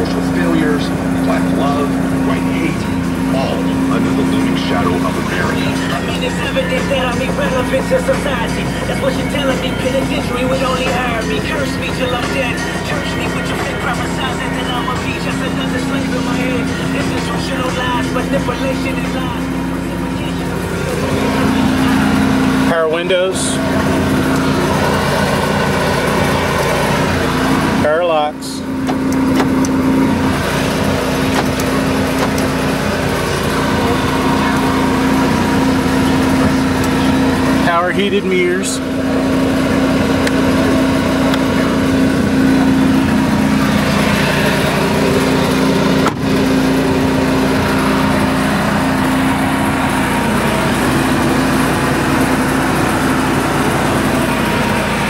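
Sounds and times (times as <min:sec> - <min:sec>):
radio talk voice: 0:00.0 - 0:20.6.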